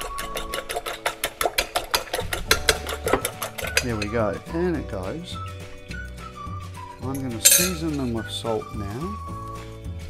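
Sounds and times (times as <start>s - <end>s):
fork whisking eggs in glass: 0.0s - 4.4s.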